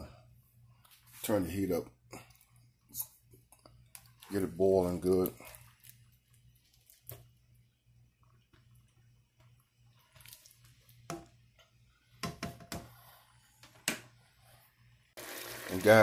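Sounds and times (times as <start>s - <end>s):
wet squelching: 5.1s - 7.3s, 9.9s - 11.0s.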